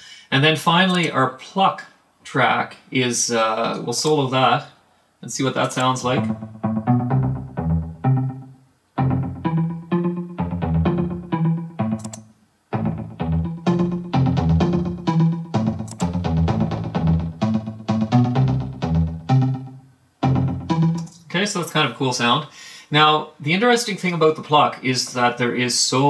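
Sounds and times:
plucked synth notes: 6.2 - 21.3.

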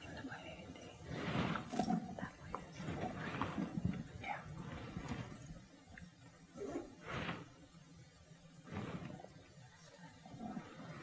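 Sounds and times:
people whispering: 0.0 - 5.5
soft bumps: 0.8 - 7.7.

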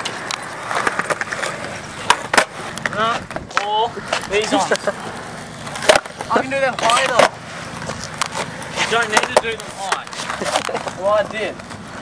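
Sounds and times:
skateboard clacks: 0.0 - 12.0
skateboard wheels rolling on concrete: 0.0 - 12.0.

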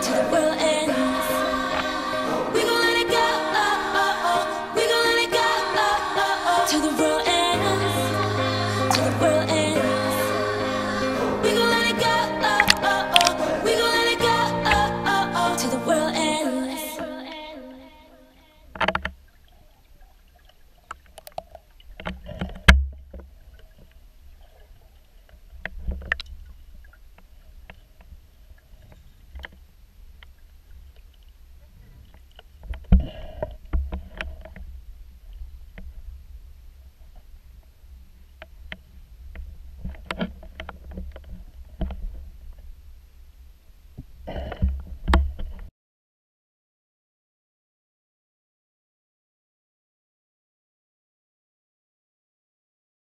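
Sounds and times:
water splashing and sloshing: 12.3 - 13.6, 18.7 - 43.0
clicks and knocks underwater: 18.8 - 36.2, 37.0 - 42.8, 44.0 - 45.7.

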